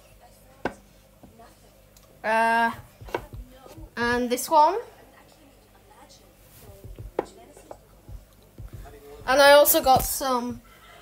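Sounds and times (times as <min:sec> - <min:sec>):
plaque handling knocks and rubs: 0:02.8 - 0:04.3, 0:06.6 - 0:10.6.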